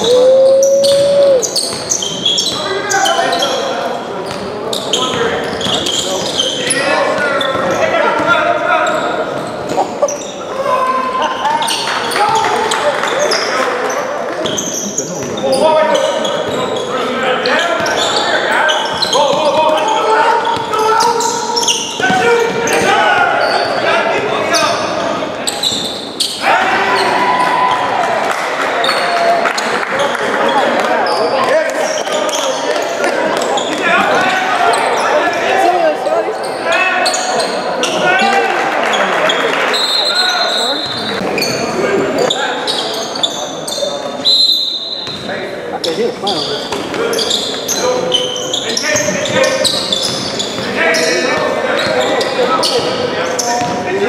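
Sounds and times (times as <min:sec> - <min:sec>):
players shouting: 0:00.0 - 0:01.7, 0:26.4 - 0:29.5.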